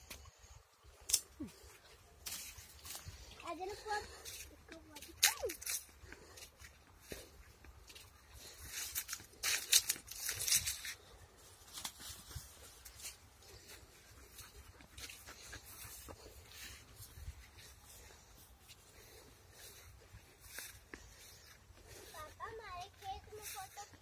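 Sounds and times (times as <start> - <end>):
footsteps on dry grassy path: 1.5 - 24.0.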